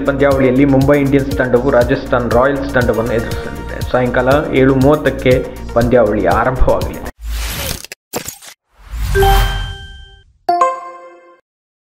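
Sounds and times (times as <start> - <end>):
struck chime notes: 9.1 - 11.4.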